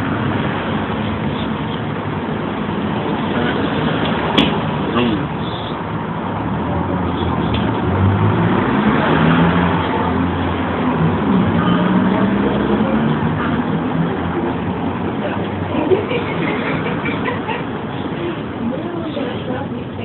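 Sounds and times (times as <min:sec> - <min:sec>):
street noise: 0:00.0 - 0:20.0.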